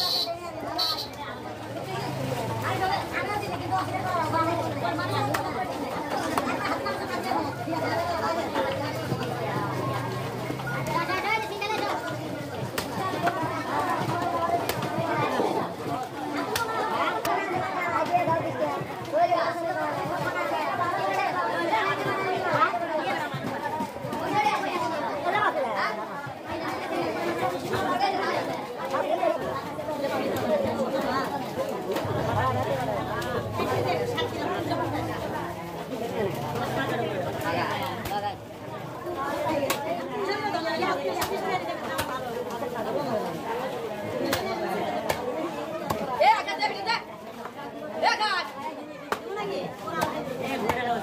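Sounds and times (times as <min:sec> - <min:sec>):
people chattering: 0:00.0 - 0:51.0
people talking: 0:00.0 - 0:51.0.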